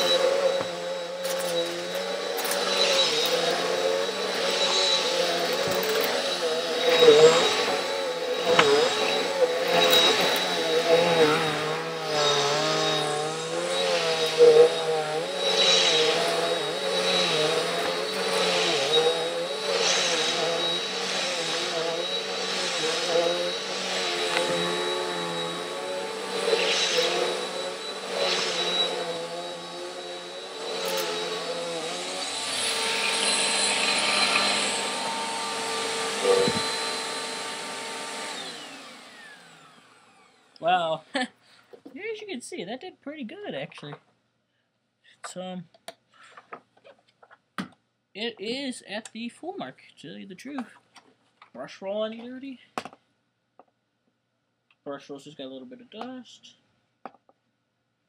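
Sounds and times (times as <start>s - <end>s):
vacuum cleaner on carpet: 0.0s - 40.9s.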